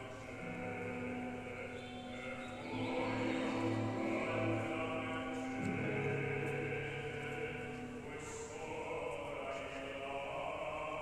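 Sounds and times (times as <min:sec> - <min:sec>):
orchestra playing held chords: 0:00.0 - 0:09.3.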